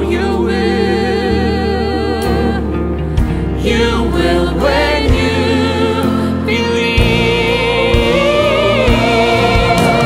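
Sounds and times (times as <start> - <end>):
choir singing: 0.0 - 2.9, 3.6 - 10.0.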